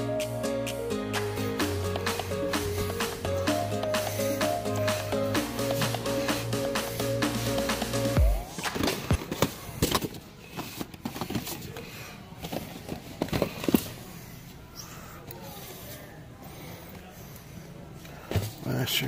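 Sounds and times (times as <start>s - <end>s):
background music: 0.0s - 9.1s.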